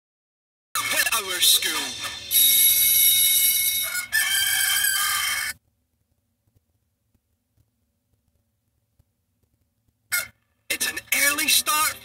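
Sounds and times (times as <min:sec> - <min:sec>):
rooster crowing: 0:03.3 - 0:05.6.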